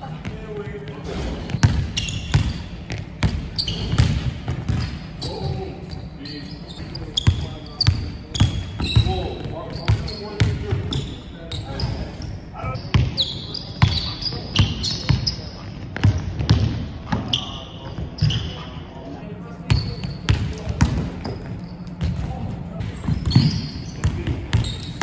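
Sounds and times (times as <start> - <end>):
sneaker squeaks: 0.2 - 25.0
basketball bouncing on wooden floor: 1.5 - 5.0.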